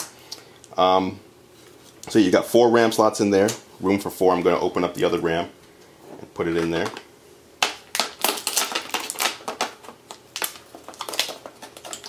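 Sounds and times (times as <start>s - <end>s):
plastic packaging crackling: 6.6s - 12.0s.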